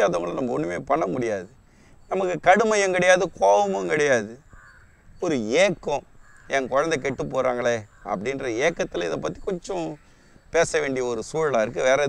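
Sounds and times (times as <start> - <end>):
man talking: 0.0 - 4.4, 5.2 - 12.0
bird cawing: 3.6 - 12.0.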